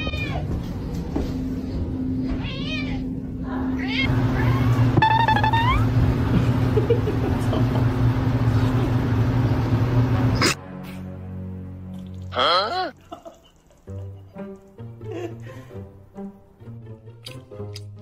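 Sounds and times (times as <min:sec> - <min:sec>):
cats meowing: 0:00.0 - 0:00.5, 0:02.3 - 0:03.1, 0:03.7 - 0:05.9
steady low hum: 0:00.2 - 0:10.6.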